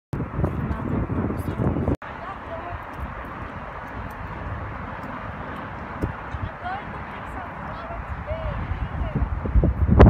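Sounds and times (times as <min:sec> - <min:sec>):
freeway traffic noise: 0:00.2 - 0:10.0.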